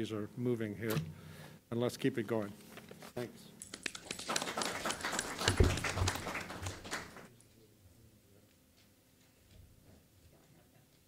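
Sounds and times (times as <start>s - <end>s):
audience applauding: 3.7s - 7.3s.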